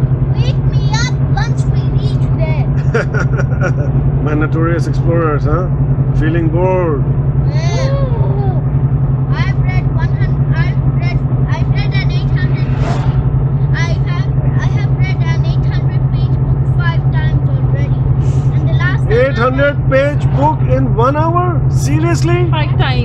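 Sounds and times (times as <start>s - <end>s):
car engine and tyres droning: 0.0s - 23.0s.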